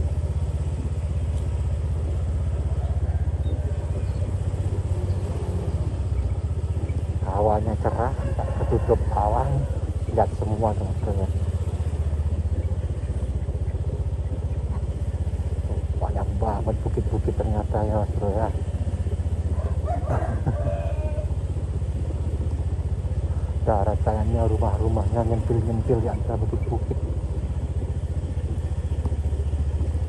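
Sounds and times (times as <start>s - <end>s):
small motorcycle engine running: 0.0s - 30.0s
person talking: 7.2s - 11.4s, 16.0s - 18.6s, 23.5s - 27.1s.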